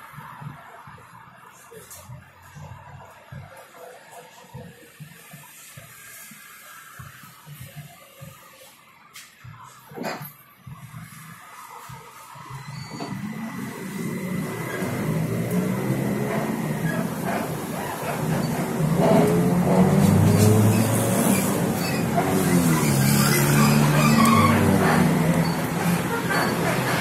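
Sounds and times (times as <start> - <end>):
road and cabin noise: 0.0 - 27.0.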